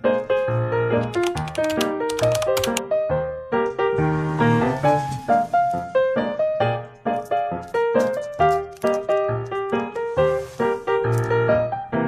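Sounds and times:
soft piano music: 0:00.0 - 0:12.0
typewriter key clicks: 0:01.0 - 0:02.8.

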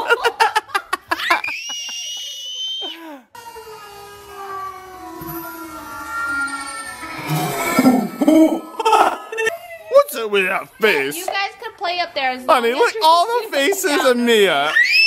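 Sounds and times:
toddler squealing: 0:01.4 - 0:09.0, 0:14.6 - 0:15.0
toddler giggling and laughing: 0:07.8 - 0:09.9.

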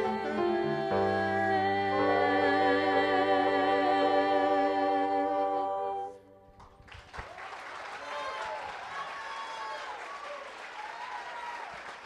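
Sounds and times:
gospel choir singing: 0:00.0 - 0:06.5
applause: 0:06.6 - 0:12.0.

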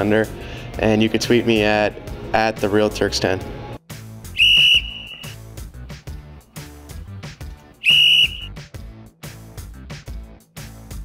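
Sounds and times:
background music with steady beat: 0:00.0 - 0:11.0
referee's whistle blasts: 0:04.4 - 0:05.4, 0:07.8 - 0:08.5.

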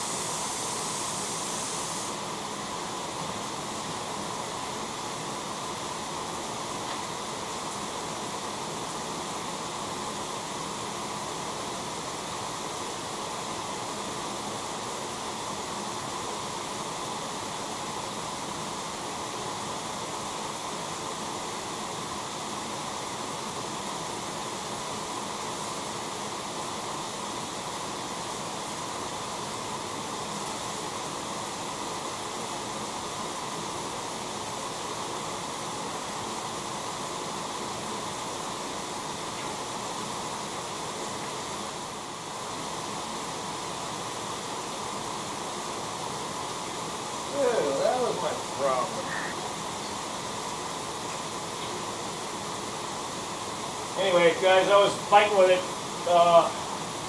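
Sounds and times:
water spraying from hose: 0:00.0 - 0:57.0.

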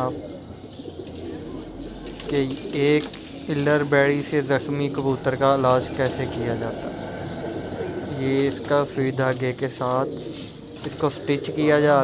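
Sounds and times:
pigeons cooing: 0:00.0 - 0:12.0.

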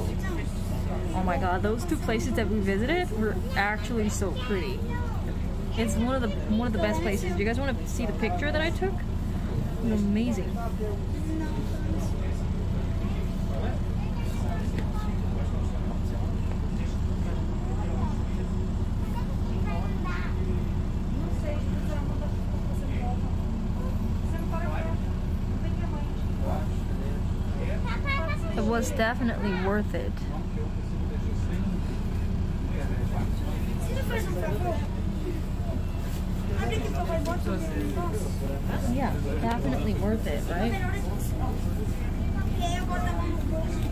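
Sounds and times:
bus engine and road rumble: 0:00.0 - 0:43.9
faint voices: 0:00.0 - 0:43.9.

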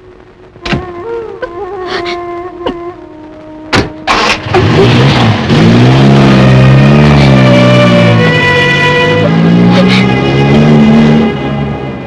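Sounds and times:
car engine starting and revving: 0:03.8 - 0:12.0.

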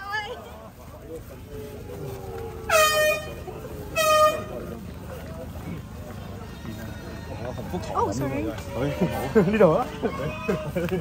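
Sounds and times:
air horn blasts: 0:02.7 - 0:04.7.

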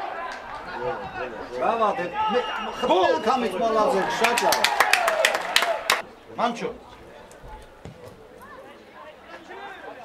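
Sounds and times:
spectators clapping: 0:04.0 - 0:06.0.

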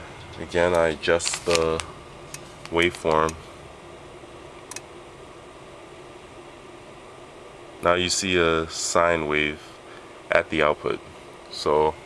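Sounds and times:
low room noise hiss: 0:00.0 - 0:12.0.

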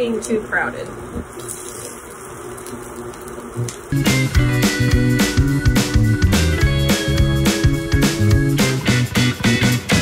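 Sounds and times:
food sizzling in hot oil: 0:00.0 - 0:05.6
guitar music with steady beat: 0:03.6 - 0:10.0.

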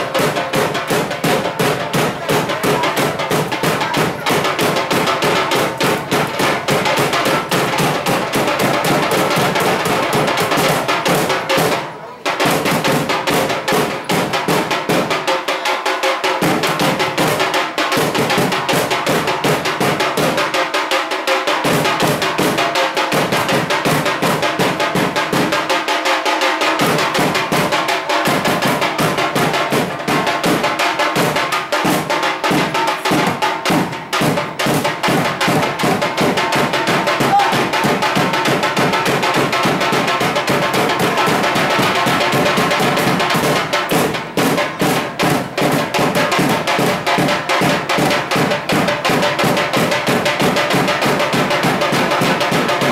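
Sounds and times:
rapid loud drumming: 0:00.0 - 0:52.9.

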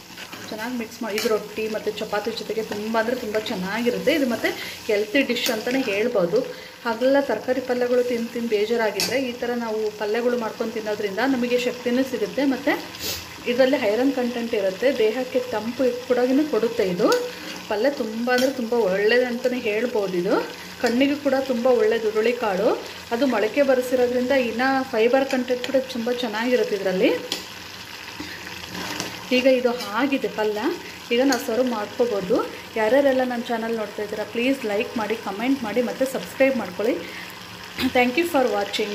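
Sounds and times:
food sizzling: 0:00.0 - 0:38.9
metal spoon scraping a pot: 0:28.2 - 0:30.0.

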